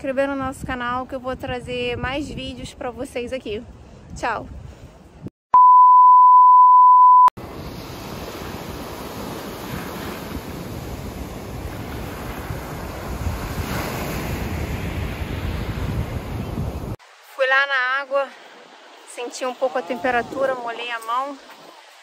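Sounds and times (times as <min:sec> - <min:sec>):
wind on microphone: 0:00.0 - 0:05.3, 0:07.4 - 0:17.0, 0:19.8 - 0:22.0
electronic beep: 0:05.6 - 0:07.3
surf breaking on pebble beach: 0:07.4 - 0:17.0.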